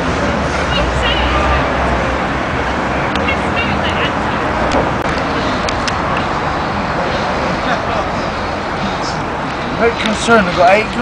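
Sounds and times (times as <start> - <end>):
faint voices: 0.0 - 11.0
traffic rumble: 0.0 - 11.0.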